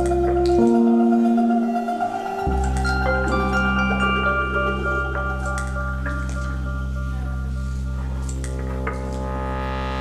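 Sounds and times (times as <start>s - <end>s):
synthesizer low drone and tones: 0.0s - 10.0s.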